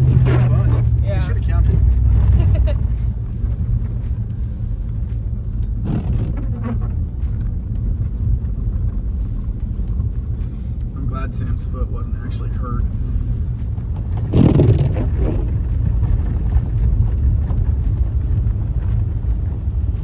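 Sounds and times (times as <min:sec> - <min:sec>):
truck engine and tyres rumbling: 0:00.0 - 0:20.0.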